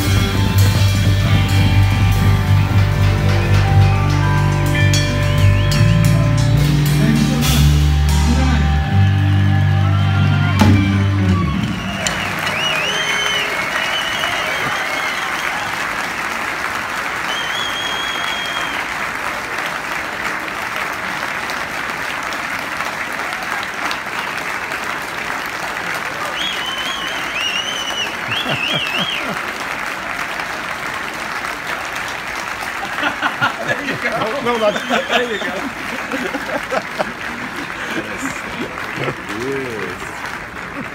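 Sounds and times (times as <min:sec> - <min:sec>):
live rock band playing: 0:00.0 - 0:12.9
crowd applauding: 0:00.0 - 0:40.9
whistles from crowd: 0:11.3 - 0:15.8, 0:17.2 - 0:19.0, 0:26.2 - 0:29.3, 0:34.4 - 0:35.7.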